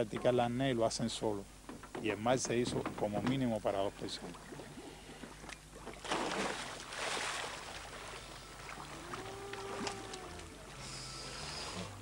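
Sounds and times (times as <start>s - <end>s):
water splashing: 4.2s - 12.0s.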